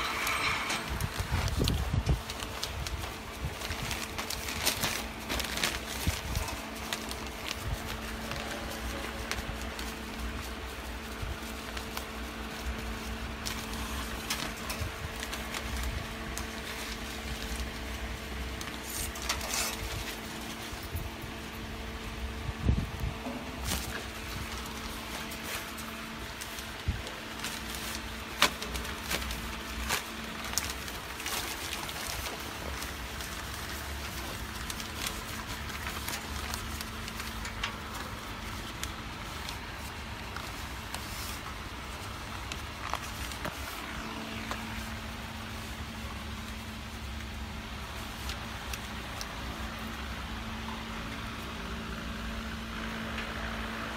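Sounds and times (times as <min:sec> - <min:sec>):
machine hum: 0:00.0 - 0:53.9
plastic film clicks and rustles: 0:00.1 - 0:51.8.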